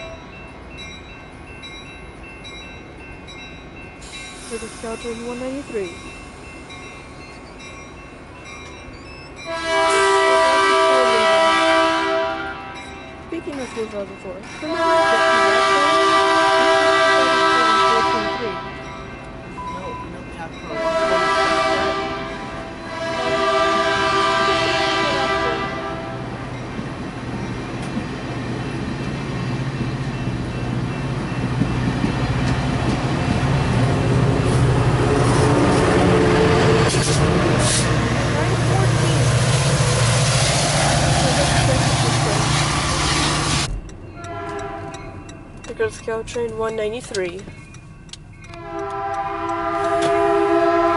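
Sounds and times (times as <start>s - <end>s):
locomotive engine: 0.0s - 50.9s
train wheels rumbling on rail: 0.0s - 50.9s
train horn blasts: 9.5s - 12.8s, 14.7s - 18.9s, 20.7s - 26.4s, 34.4s - 39.5s, 44.2s - 45.2s, 48.5s - 50.9s.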